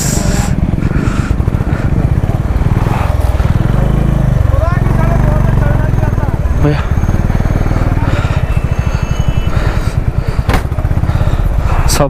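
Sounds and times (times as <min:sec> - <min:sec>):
motorcycle engine running slowly: 0:00.0 - 0:12.0.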